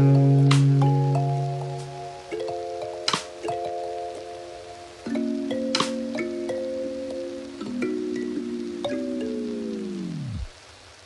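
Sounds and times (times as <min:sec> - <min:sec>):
lo-fi hip hop music: 0:00.0 - 0:10.5.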